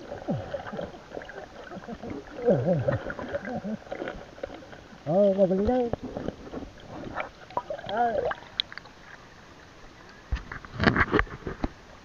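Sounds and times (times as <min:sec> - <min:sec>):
muffled underwater river: 0:00.0 - 0:12.0
clicks and crackles: 0:05.6 - 0:08.9, 0:10.1 - 0:11.8.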